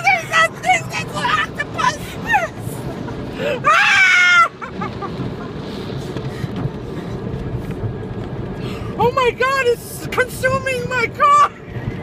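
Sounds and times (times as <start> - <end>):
car wash machinery rushing: 0.0 - 12.0.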